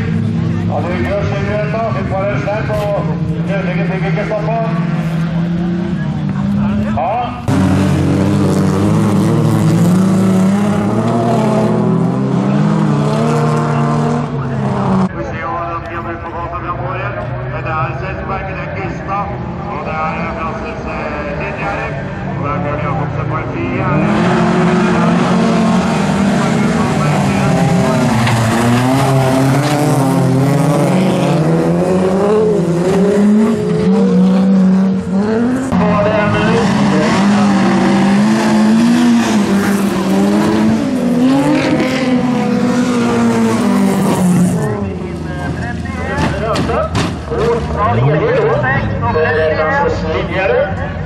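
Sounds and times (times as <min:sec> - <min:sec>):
race car engines revving: 0:00.0 - 0:51.0.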